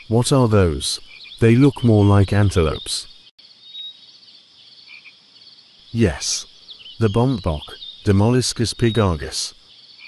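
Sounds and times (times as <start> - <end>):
chorus of calling small animals: 0.0 - 4.0, 6.0 - 10.0.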